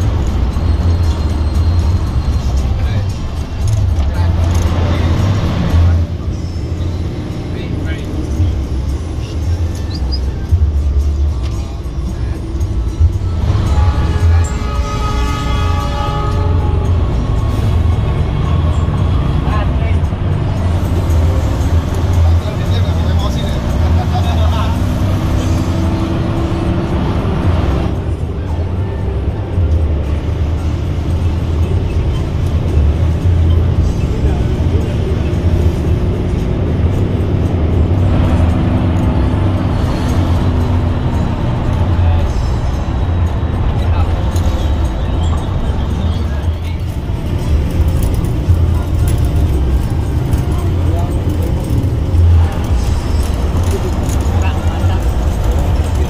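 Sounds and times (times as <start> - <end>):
bus engine running: 0.0 - 56.0
music with singing: 0.0 - 56.0.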